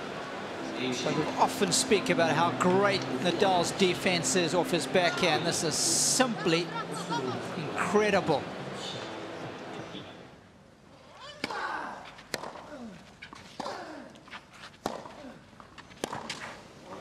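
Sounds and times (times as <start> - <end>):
tennis racket hitting ball: 12.2 - 12.7, 14.8 - 15.2, 16.0 - 16.5.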